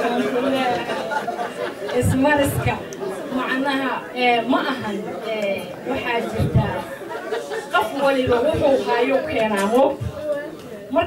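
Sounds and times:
woman speaking into a microphone: 0:00.0 - 0:01.0, 0:01.9 - 0:06.9, 0:07.7 - 0:11.0
audience chatter: 0:00.0 - 0:11.0.

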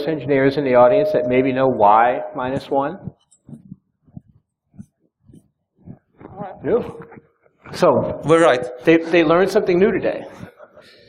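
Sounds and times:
man speaking: 0:00.0 - 0:03.1, 0:06.3 - 0:07.0, 0:07.7 - 0:10.4.

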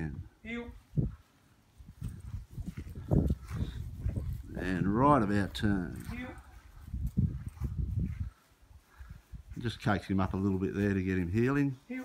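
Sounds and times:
footsteps on grass: 0:00.8 - 0:12.0
person speaking: 0:04.0 - 0:06.6.

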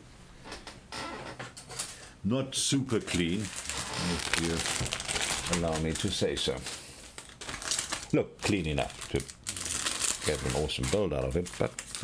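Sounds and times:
plastic sprues rustling and clicking: 0:02.9 - 0:12.0.

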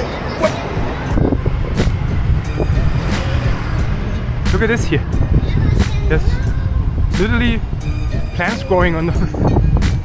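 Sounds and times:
city bus rumbling: 0:00.0 - 0:10.0
street traffic: 0:00.0 - 0:10.0.

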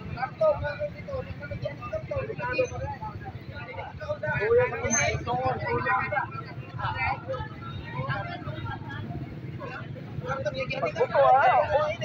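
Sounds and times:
passing vehicle engines rumbling: 0:00.0 - 0:12.0
people talking: 0:00.0 - 0:12.0.

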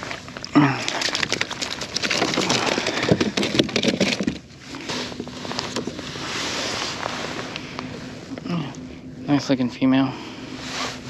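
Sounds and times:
crackling handling noise: 0:00.0 - 0:08.8
jacket sleeves brushing: 0:04.8 - 0:07.6, 0:10.6 - 0:11.0.

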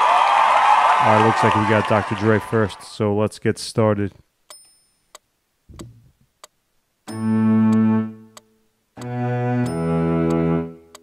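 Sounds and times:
metronome clicks: 0:04.5 - 0:11.0
soft low thump: 0:05.7 - 0:06.1.

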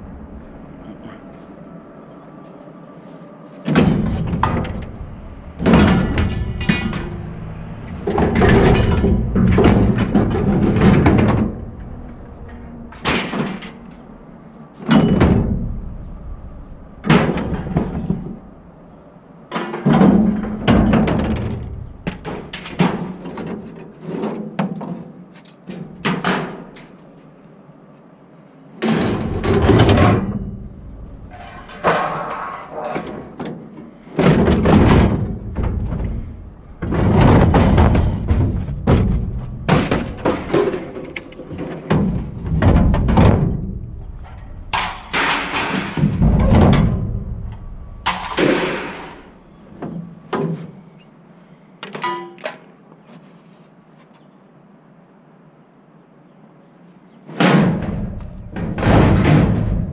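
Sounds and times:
scrap metal clanks and crashes: 0:03.6 - 0:14.2, 0:28.8 - 0:50.7, 0:57.4 - 0:59.9.

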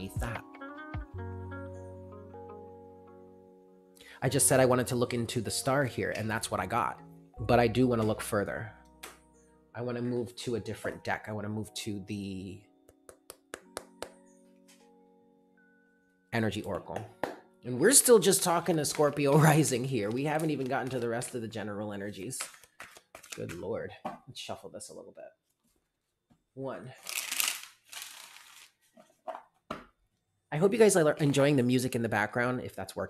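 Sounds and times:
lo-fi background music: 0:00.0 - 0:22.6, 0:30.5 - 0:33.0
cards being shuffled: 0:20.0 - 0:21.5, 0:22.2 - 0:23.6, 0:27.0 - 0:29.2.

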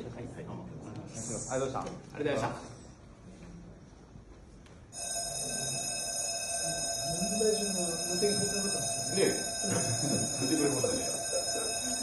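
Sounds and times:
steady high tones: 0:05.0 - 0:12.0
people talking indistinctly: 0:06.6 - 0:12.0.

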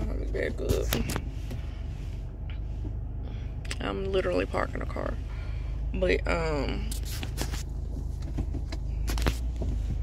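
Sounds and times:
car engine and cabin hum: 0:00.0 - 0:10.0.

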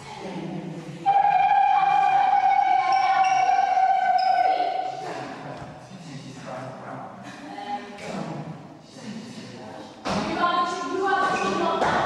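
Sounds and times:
long held high note: 0:01.1 - 0:05.0
quieter higher notes: 0:01.1 - 0:05.3.

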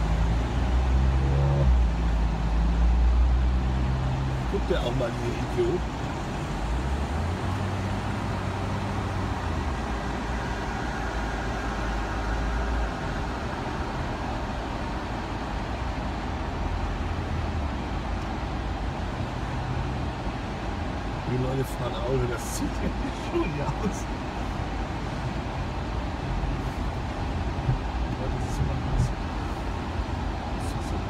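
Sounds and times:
car engine and road rumble: 0:00.0 - 0:31.0.

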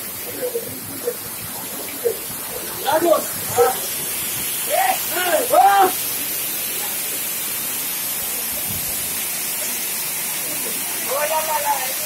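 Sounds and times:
water splashing onto turbine blades: 0:00.0 - 0:12.0.

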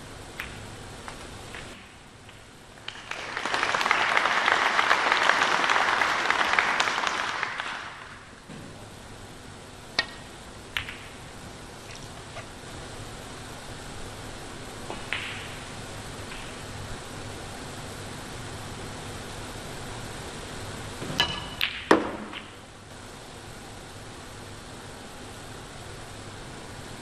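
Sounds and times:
steady background hiss: 0:00.0 - 0:27.0
snooker balls clicking: 0:00.4 - 0:02.5, 0:10.0 - 0:12.6, 0:14.8 - 0:16.8, 0:21.2 - 0:22.6.

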